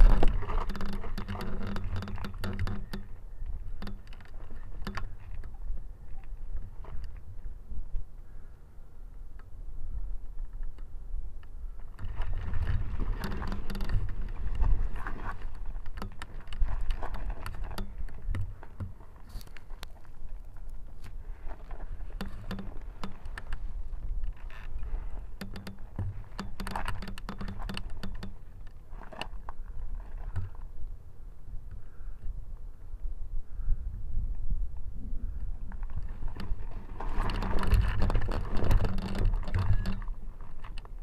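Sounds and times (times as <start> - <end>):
clicking and rattling of frame: 0.0 - 5.6, 11.9 - 20.1, 21.6 - 29.6, 35.8 - 41.0
wind rumble on microphone: 0.0 - 41.0.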